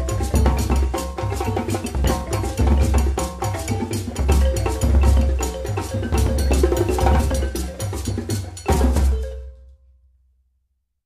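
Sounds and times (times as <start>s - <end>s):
drum and bell percussion music: 0.0s - 9.8s.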